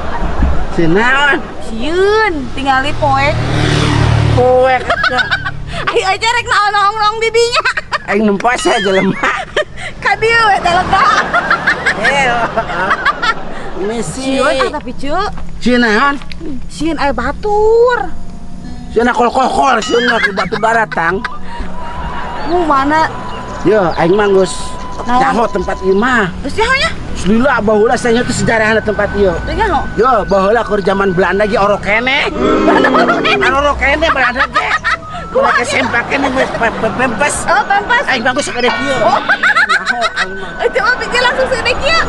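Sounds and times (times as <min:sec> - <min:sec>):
voices talking over one another: 0:00.0 - 0:42.0
woman talking rapidly: 0:04.7 - 0:07.8, 0:10.0 - 0:11.2, 0:13.9 - 0:15.3, 0:31.7 - 0:42.0
thin high tone: 0:10.3 - 0:42.0.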